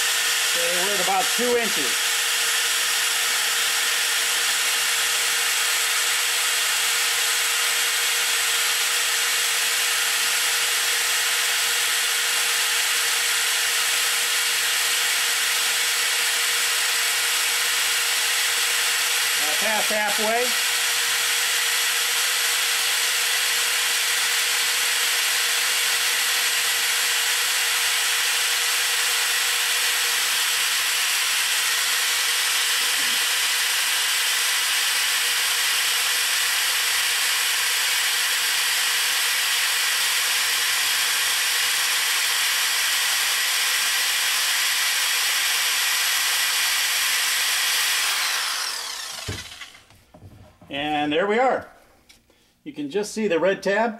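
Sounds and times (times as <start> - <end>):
electric drill whirring: 0.0 - 50.3.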